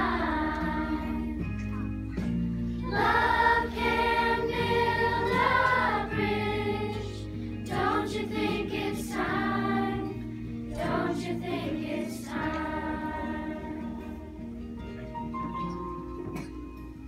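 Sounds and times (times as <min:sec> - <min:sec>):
children's choir singing: 0:00.0 - 0:01.6, 0:02.8 - 0:14.4.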